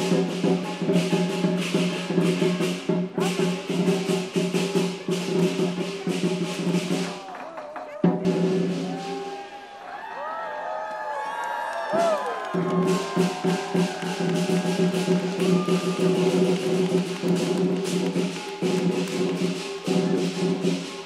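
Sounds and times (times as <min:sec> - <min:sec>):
drum gong and cymbals: 0:00.0 - 0:07.3, 0:08.1 - 0:09.4, 0:12.7 - 0:21.0.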